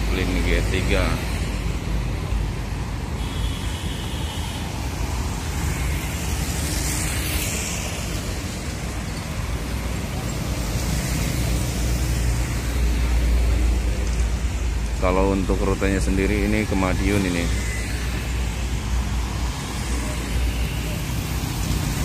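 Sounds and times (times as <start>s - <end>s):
roadside traffic: 0.0s - 22.0s.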